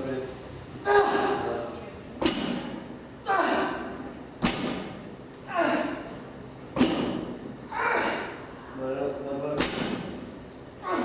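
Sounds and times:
barbell plates striking floor: 4.4 - 5.0, 6.8 - 7.4.

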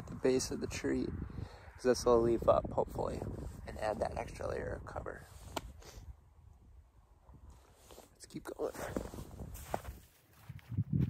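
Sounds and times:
light wind on microphone: 0.0 - 11.0.

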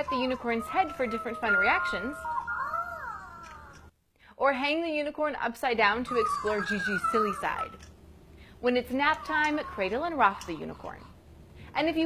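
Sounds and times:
toy squeaky electronic call: 1.4 - 3.7.

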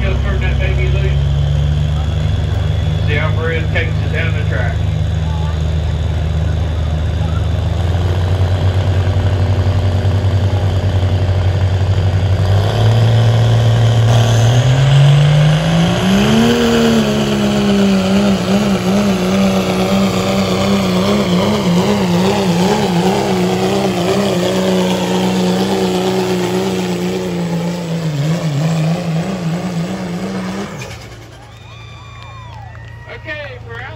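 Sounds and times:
diesel truck engine revving: 0.0 - 33.9.

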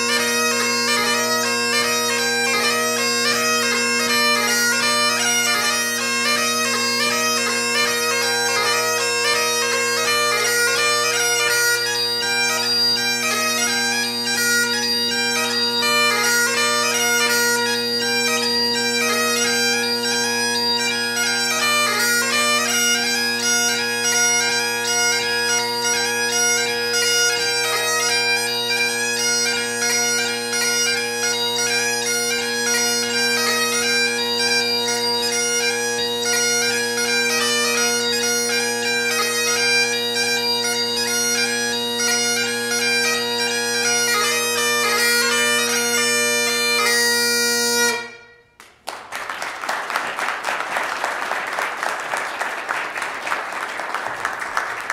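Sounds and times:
bagpipe playing: 0.0 - 54.9
audience applause: 48.6 - 54.9.

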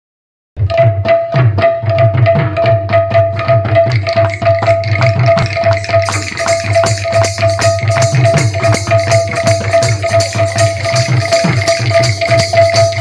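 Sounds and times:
fast jingling percussion: 0.7 - 13.0
hand drum with sliding bass: 1.4 - 13.0.

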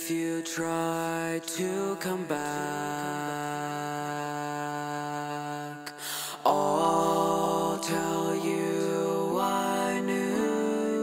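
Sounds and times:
synthesized vocal harmony: 0.0 - 11.0.

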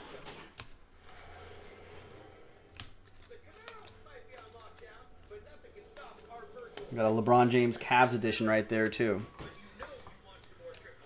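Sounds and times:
trading cards sliding: 0.0 - 8.3.

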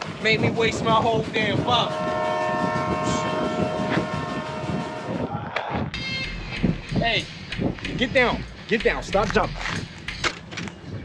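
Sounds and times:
train whistle blowing: 1.7 - 5.3.

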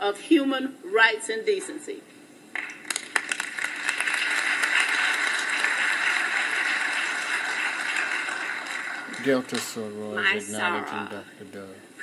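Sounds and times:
audience applauding: 2.6 - 9.9.

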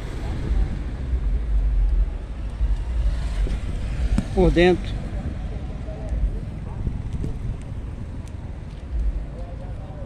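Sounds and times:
cars and motorcycles passing: 0.0 - 10.0
road traffic rumble: 0.0 - 10.0.

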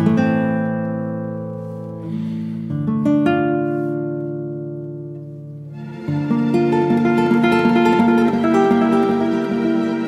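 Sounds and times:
acoustic guitar chord ringing: 0.0 - 10.0.

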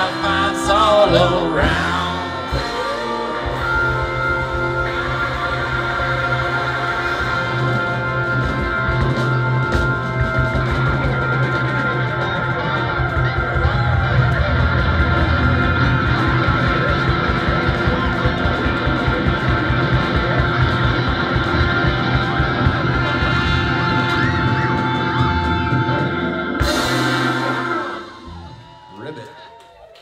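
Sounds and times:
live rock band playing: 0.0 - 29.6.

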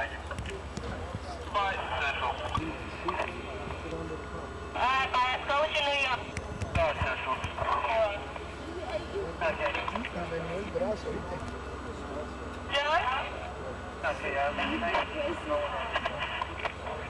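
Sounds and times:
people talking in the street: 0.0 - 17.0
steady low hum: 0.0 - 17.0.

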